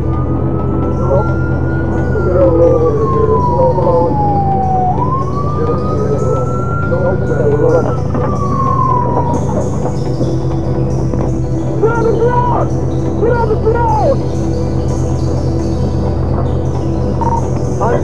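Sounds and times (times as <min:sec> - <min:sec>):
low music drone: 0:00.0 - 0:18.0
police siren wailing: 0:00.0 - 0:18.0.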